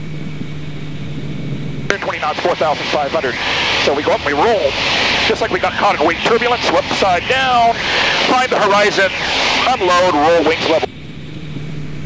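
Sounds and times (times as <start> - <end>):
airplane engine drone in cockpit: 0.0 - 12.0.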